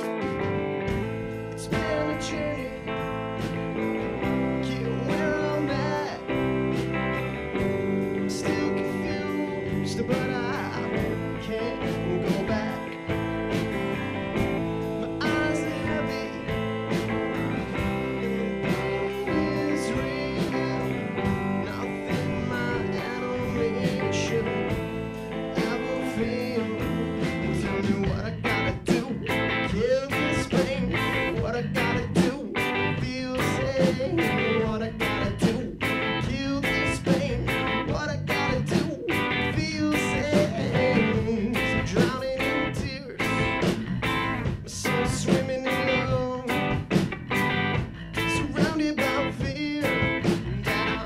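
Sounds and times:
drum kit: 0.0s - 51.0s
electric bass: 0.0s - 51.0s
electric guitar: 0.0s - 51.0s
person singing: 0.0s - 51.0s.

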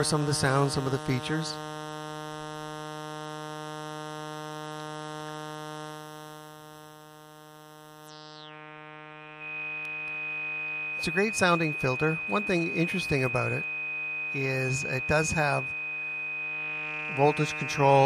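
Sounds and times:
buzzy synthesizer note: 0.0s - 18.0s
high resonant whistling peak: 9.3s - 18.0s.

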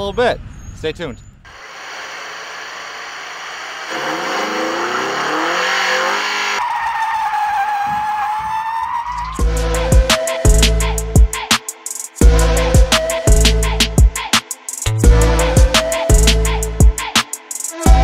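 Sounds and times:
car engine revving: 1.8s - 7.8s, 9.0s - 11.1s, 12.2s - 13.8s, 15.0s - 16.8s
tire squeal: 3.9s - 10.9s
beat with heavy bass drum: 9.4s - 18.0s.

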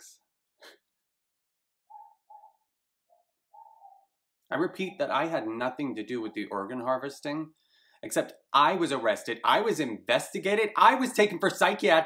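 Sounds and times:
dove cooing: 3.6s - 4.0s.

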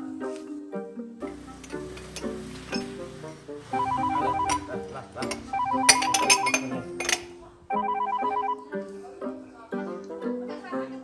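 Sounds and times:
background music: 0.0s - 11.0s
phone ringtone warble: 3.7s - 4.8s, 5.4s - 6.7s, 7.7s - 8.7s.

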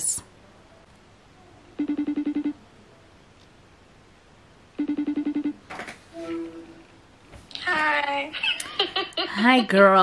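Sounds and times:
phone ringback tone: 1.8s - 2.6s, 4.8s - 5.6s.

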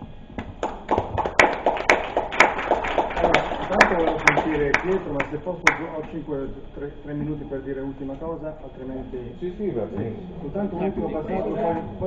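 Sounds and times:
audience clapping: 0.4s - 6.1s.

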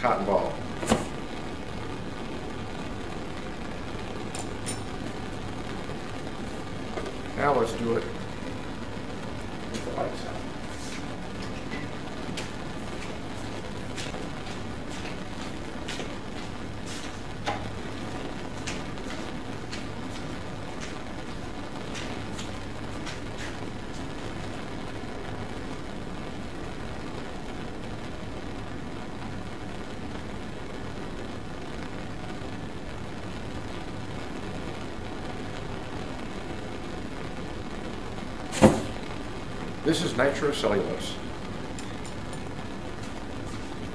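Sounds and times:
burner flame hissing: 0.0s - 43.9s
sharp ignition pop: 0.8s - 1.3s, 38.4s - 39.2s.

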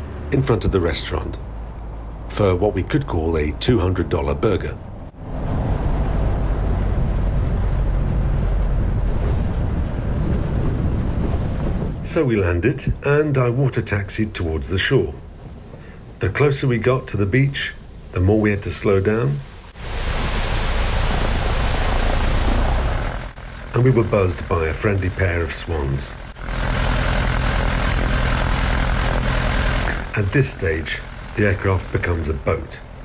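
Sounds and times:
airplane engine and propeller: 0.0s - 33.0s
wind buffeting microphone: 4.9s - 18.2s
water rushing: 16.2s - 33.0s.

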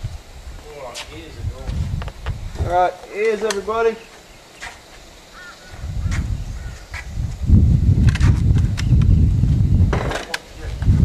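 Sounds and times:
low rumble on microphone: 0.0s - 2.8s, 5.6s - 11.0s.

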